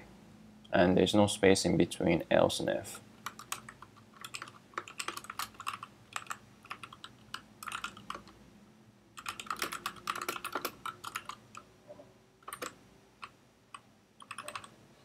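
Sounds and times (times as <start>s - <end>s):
computer keyboard typing: 3.2s - 8.4s, 9.2s - 11.7s, 12.4s - 14.8s.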